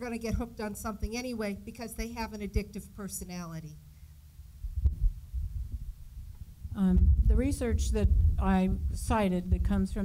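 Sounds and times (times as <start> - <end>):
microphone handling thumps: 4.5 - 9.8
microphone click: 4.6 - 9.0.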